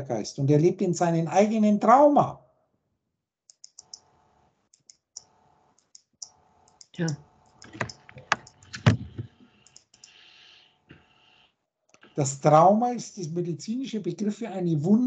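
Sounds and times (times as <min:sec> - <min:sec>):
computer keyboard and mouse clicking: 0:03.5 - 0:04.1, 0:04.7 - 0:10.3.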